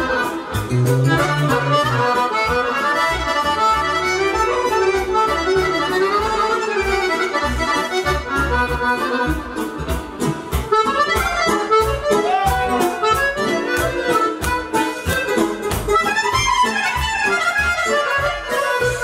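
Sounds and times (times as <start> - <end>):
pulsing bass line: 0.0 - 17.8
accordion melody: 0.0 - 19.0
steady beat: 0.0 - 19.0.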